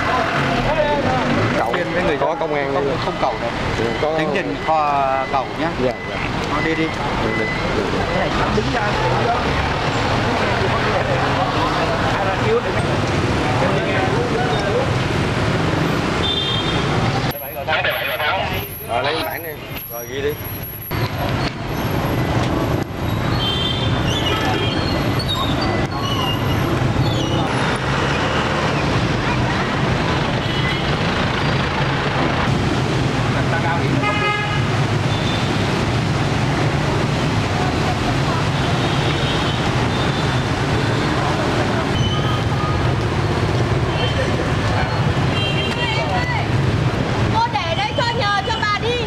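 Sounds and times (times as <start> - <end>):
road traffic noise: 0.0 - 49.0
street noise: 0.0 - 49.0
indistinct voices: 16.9 - 23.2.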